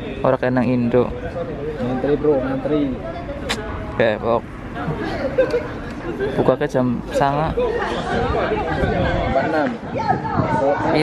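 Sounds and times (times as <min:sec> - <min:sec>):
people talking at once: 0:01.0 - 0:11.0.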